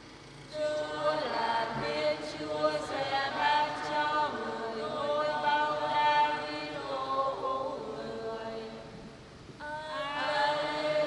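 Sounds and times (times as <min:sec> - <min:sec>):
choir singing chant: 0:00.5 - 0:09.0, 0:09.6 - 0:11.0.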